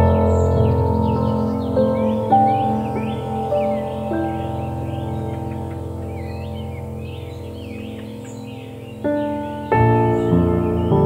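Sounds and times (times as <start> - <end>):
ambient music chord: 0.0 - 11.0.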